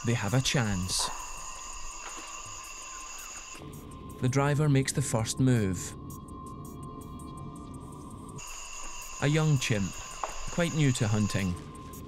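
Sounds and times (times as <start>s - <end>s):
insects droning high tones: 0.0s - 5.2s, 5.9s - 12.0s.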